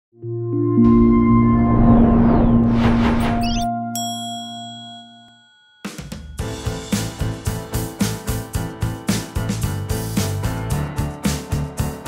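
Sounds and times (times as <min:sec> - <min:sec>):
bright chime: 0:03.9 - 0:06.7
background music with steady beat: 0:05.8 - 0:12.0.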